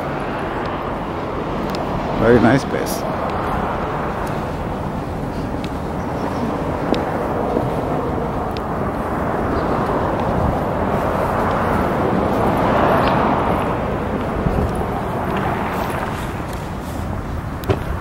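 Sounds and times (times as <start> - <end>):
steady outdoor rushing noise: 0.0 - 18.0
faint clicks: 8.5 - 8.7.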